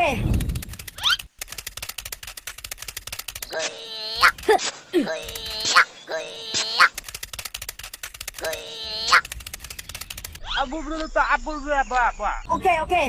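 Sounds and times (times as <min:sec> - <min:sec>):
fast run of clicks: 0:00.2 - 0:03.6, 0:04.2 - 0:05.9, 0:06.6 - 0:10.4
sped-up cartoon voices giggling: 0:03.5 - 0:07.0, 0:08.4 - 0:09.4.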